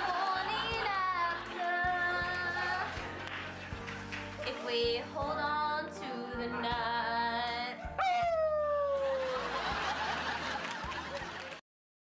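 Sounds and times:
studio audience applauding: 0:00.0 - 0:04.5, 0:08.6 - 0:11.6
audience laughing: 0:08.8 - 0:11.6.

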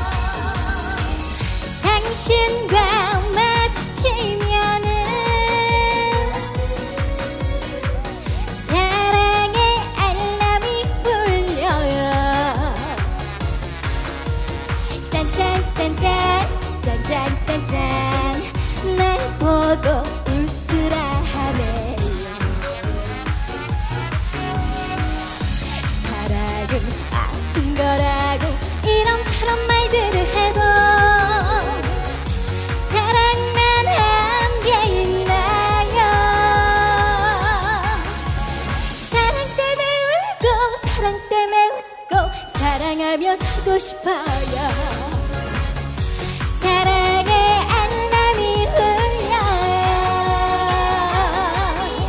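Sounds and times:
woman singing into microphone: 0:00.0 - 0:13.5, 0:14.7 - 0:45.7, 0:46.3 - 0:52.0
steady drum beat: 0:00.0 - 0:39.3
keyboards: 0:00.0 - 0:52.0.

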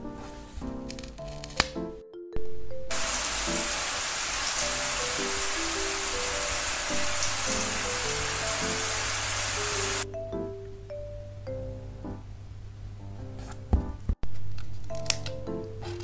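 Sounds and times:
soft background music: 0:00.0 - 0:16.0
shower water spraying: 0:02.9 - 0:10.0.

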